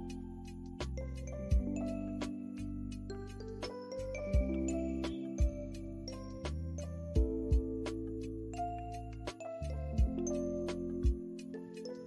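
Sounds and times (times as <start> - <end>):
deep low beat: 0.0 - 3.0, 3.6 - 11.3
soft instrumental music: 0.0 - 12.0.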